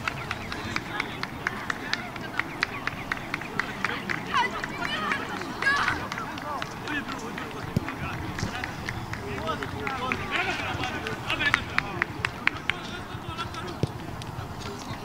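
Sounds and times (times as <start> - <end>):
people talking and calling out: 0.0 - 15.0.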